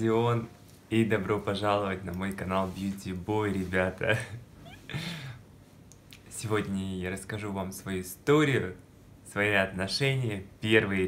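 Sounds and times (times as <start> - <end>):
person speaking: 0.0 - 5.3, 5.9 - 11.0.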